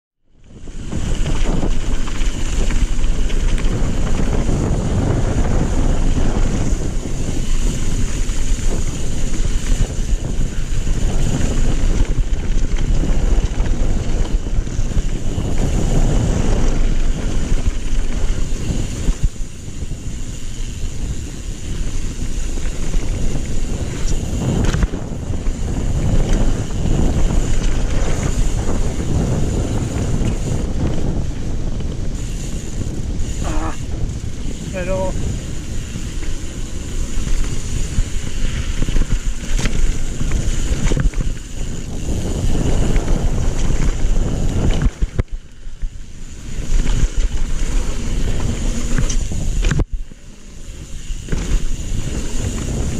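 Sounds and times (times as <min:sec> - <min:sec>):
wind noise on microphone: 0:00.2 - 0:52.9
bike tyres rumbling on dirt: 0:00.3 - 0:52.9.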